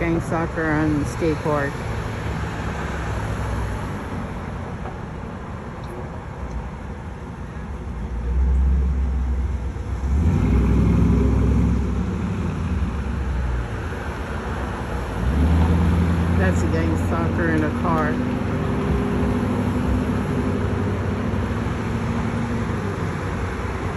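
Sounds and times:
car engines running: 0.0s - 23.9s
cars passing on road: 0.0s - 23.9s
low traffic rumble: 0.0s - 23.9s.

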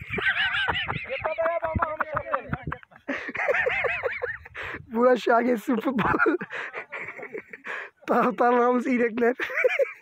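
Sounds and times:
person laughing: 0.0s - 4.8s, 6.0s - 8.4s, 9.4s - 10.0s
short breath: 7.6s - 8.0s.

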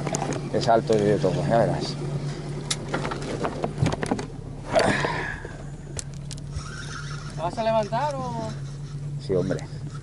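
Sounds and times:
boat engine idling: 0.0s - 10.0s.

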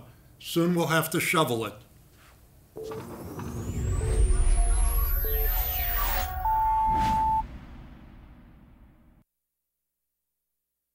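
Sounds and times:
bright held synth tone: 2.8s - 7.8s
short synth notes: 2.8s - 8.5s
rising whoosh: 2.8s - 9.2s
deep rumble: 3.1s - 9.2s.

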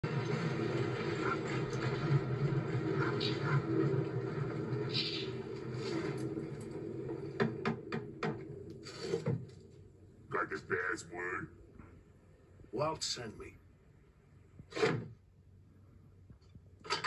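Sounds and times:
low rumble: 0.0s - 8.9s.

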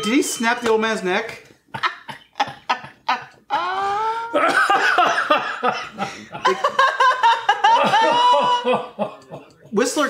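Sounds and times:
group laughing: 1.7s - 9.8s.

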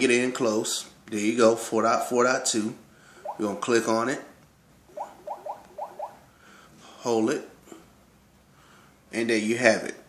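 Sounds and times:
phone touch-feedback blips: 3.2s - 3.6s, 5.0s - 6.2s.

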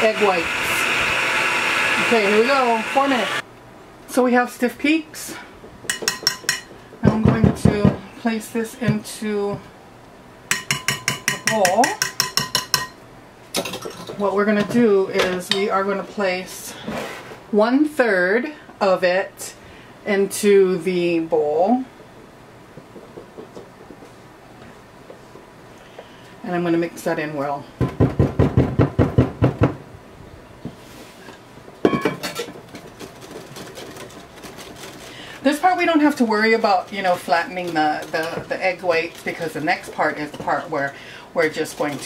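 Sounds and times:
utensil tapping metal bowl: 5.9s - 6.7s, 10.5s - 13.0s.

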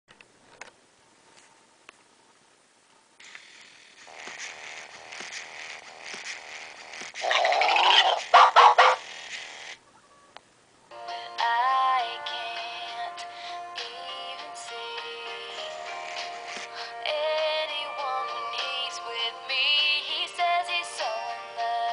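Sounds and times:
loud warbling burst: 7.2s - 9.2s
music from small speaker: 10.9s - 21.9s.

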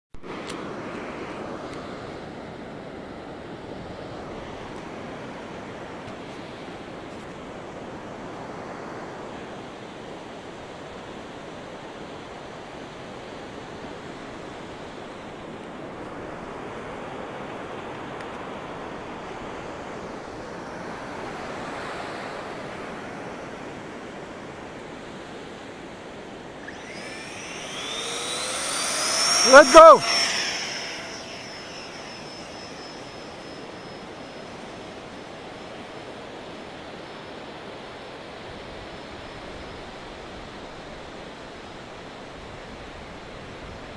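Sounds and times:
electric ducted fan whine: 26.5s - 37.5s.

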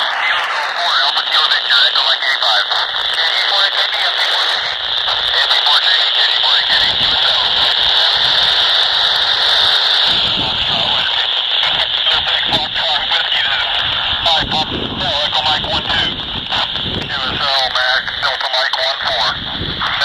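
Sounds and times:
radio voices: 0.0s - 20.0s
steady static hiss: 0.0s - 20.0s.

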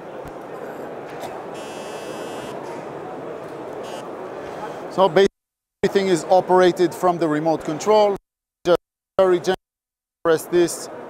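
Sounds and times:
exhibition hall hubbub: 0.0s - 8.2s, 10.3s - 11.0s
electronic buzz: 1.5s - 2.6s, 3.8s - 4.1s.

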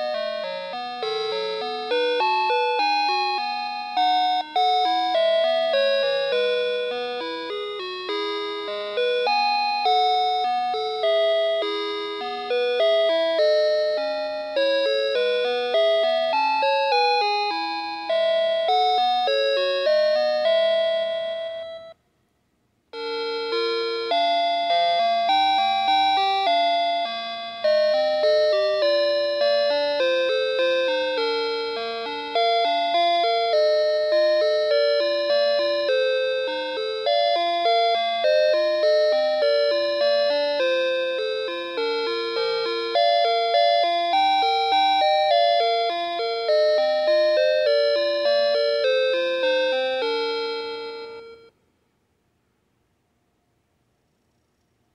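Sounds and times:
toy playing chime-like lullaby: 0.0s - 22.0s, 23.0s - 51.6s.

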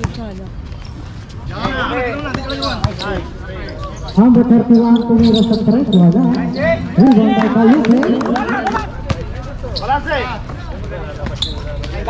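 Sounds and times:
players shouting: 4.9s - 9.1s.

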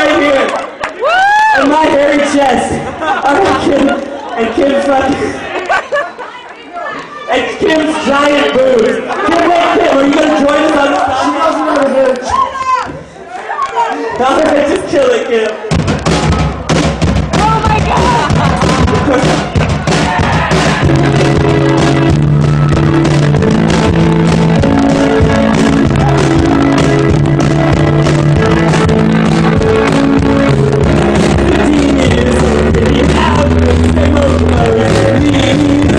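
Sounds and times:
crowd noise: 0.0s - 35.9s
steady drum beat: 15.7s - 35.9s
keyboard chords and bass line: 17.4s - 35.9s.

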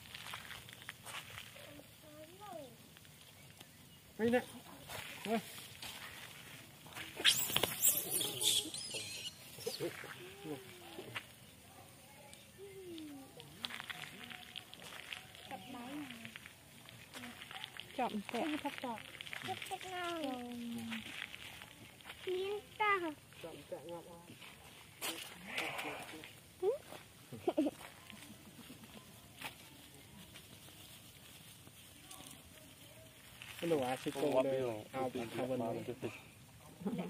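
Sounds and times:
monkeys squealing and chirping: 7.2s - 10.3s
macaques calling: 7.2s - 11.0s.

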